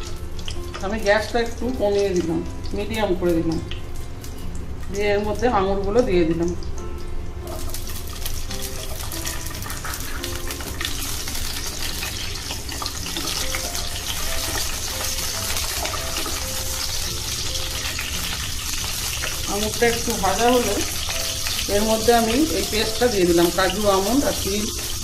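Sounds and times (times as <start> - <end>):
faint background music: 0.0 - 25.0
grapes sizzling in hot oil: 0.0 - 25.0.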